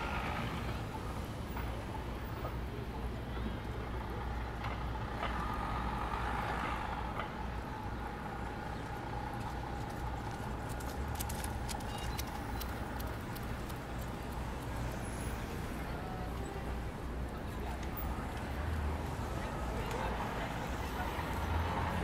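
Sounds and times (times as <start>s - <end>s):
passing cars and buses: 0.0s - 22.0s
sharp ticks: 9.8s - 14.8s.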